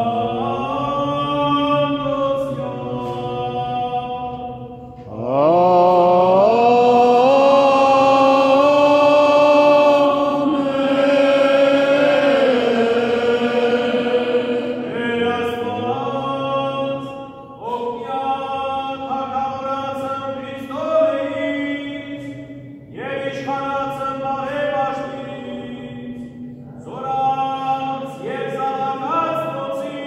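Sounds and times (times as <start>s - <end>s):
man singing unaccompanied chant: 0.0s - 30.0s.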